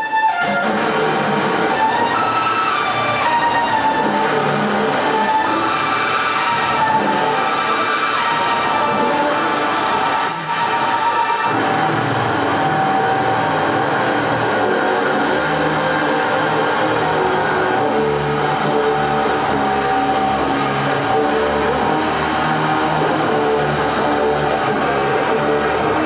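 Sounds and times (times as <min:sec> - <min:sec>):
loud droning synthesizer music: 0:00.0 - 0:26.0.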